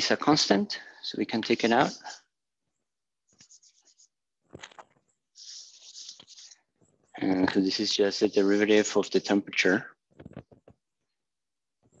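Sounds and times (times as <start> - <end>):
chalk scratching on blackboard: 3.4 - 4.1, 5.4 - 6.6.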